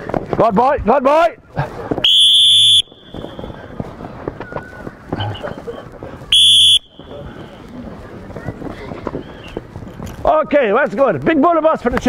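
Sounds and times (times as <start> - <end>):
murmur of voices: 0.0 - 12.0
coach's whistle blast: 2.0 - 3.5, 6.3 - 7.2
children's knocks and scuffs: 3.0 - 6.3, 6.9 - 12.0.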